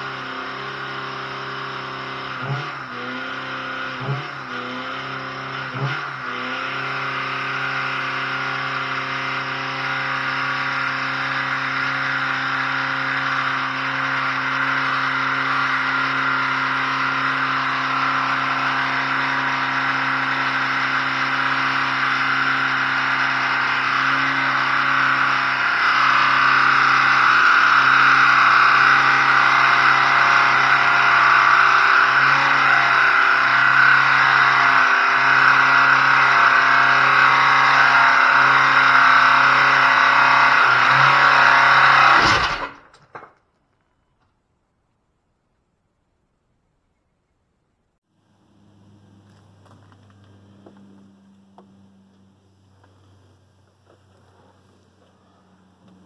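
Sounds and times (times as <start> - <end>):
car engine at high revs: 0.0 - 42.9, 48.1 - 56.0.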